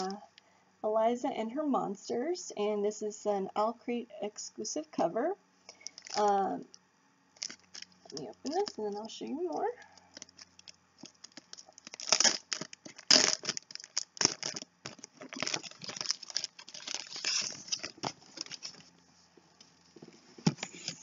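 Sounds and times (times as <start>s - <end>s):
plastic wrapping tearing and crinkling: 5.8s - 6.3s, 7.4s - 9.1s, 10.1s - 18.9s.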